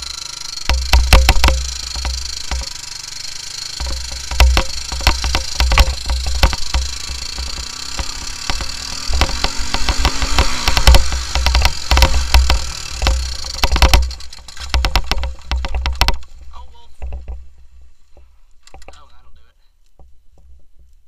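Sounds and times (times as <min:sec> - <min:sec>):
quad engine revving: 0:00.0 - 0:16.3
knocks and rattles: 0:00.6 - 0:02.8, 0:03.7 - 0:19.1.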